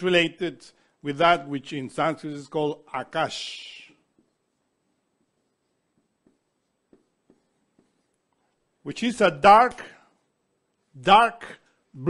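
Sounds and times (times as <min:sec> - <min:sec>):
man speaking: 0:00.0 - 0:04.1, 0:08.8 - 0:10.0, 0:11.0 - 0:12.0.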